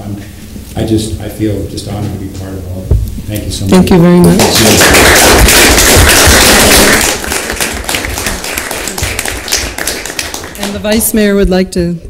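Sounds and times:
audience applauding: 4.2 - 11.1.

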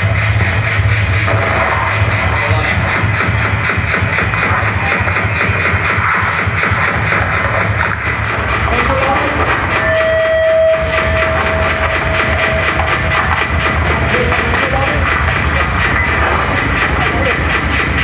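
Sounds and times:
harsh pulsing noise music: 0.0 - 18.0
steady high tone: 0.0 - 18.0.

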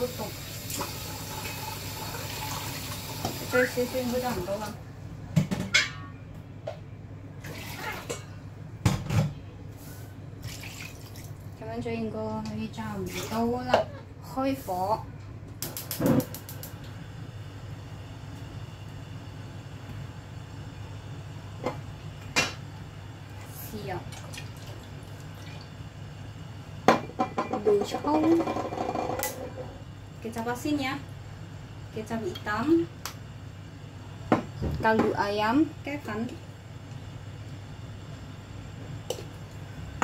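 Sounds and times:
steady low hum: 8.1 - 40.0.

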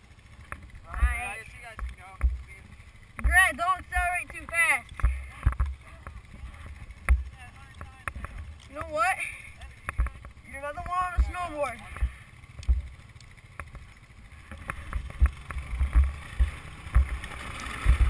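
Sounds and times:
low thumps on microphone: 7.0 - 7.3, 12.0 - 12.9, 14.6 - 17.2
young people calling out: 10.5 - 11.9.

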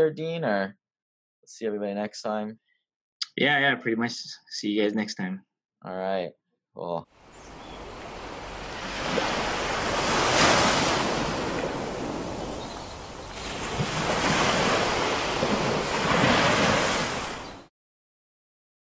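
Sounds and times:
ocean surf breaking: 7.2 - 17.7.

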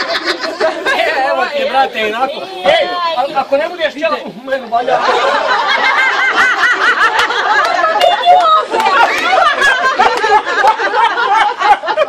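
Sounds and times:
people laughing and talking: 0.0 - 12.0.

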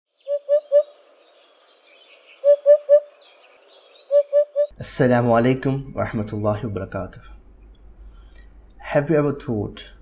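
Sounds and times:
faint bird chirps: 0.1 - 4.7.

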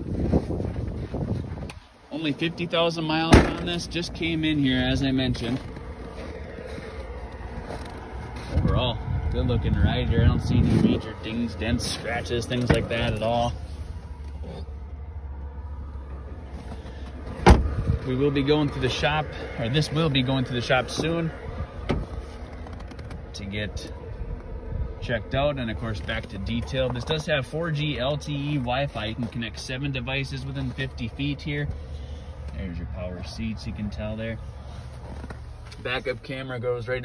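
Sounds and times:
wind buffeting microphone: 0.0 - 1.9, 8.3 - 11.8, 17.5 - 18.1
low steady rumble: 0.0 - 37.0
car door shutting: 3.3 - 3.9, 17.3 - 17.9.

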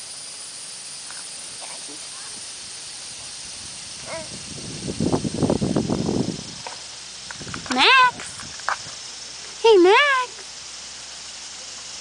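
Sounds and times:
steady outdoor hiss: 0.0 - 12.0.

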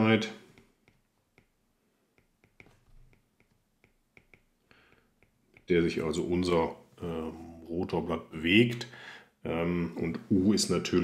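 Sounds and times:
stylus tapping on glass screen: 2.1 - 5.7.

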